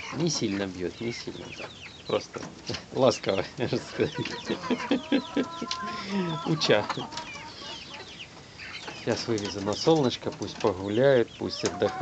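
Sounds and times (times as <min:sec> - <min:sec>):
chickens clucking: 0:00.0 - 0:12.0
chicks cheeping: 0:00.0 - 0:12.0
long held chicken call: 0:04.4 - 0:07.9.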